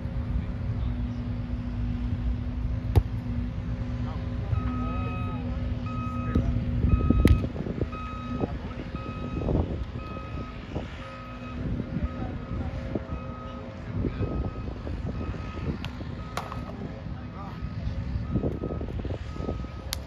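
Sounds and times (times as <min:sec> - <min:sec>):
low engine rumble: 0:00.0 - 0:20.0
reversing alarm beeping: 0:04.5 - 0:16.8, 0:17.5 - 0:19.9.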